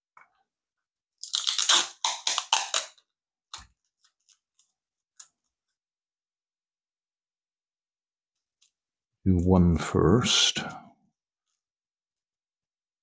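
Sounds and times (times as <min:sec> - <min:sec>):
tape ripping off roll: 0:01.2 - 0:03.7.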